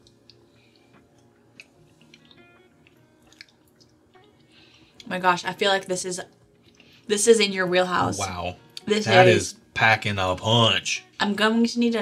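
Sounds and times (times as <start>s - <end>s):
soft background music: 0.0s - 12.0s
wet mouth clicks: 1.5s - 4.0s.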